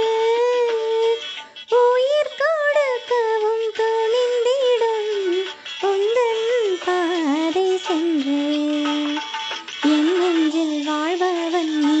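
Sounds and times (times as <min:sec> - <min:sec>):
soft accompaniment: 0:00.0 - 0:12.0.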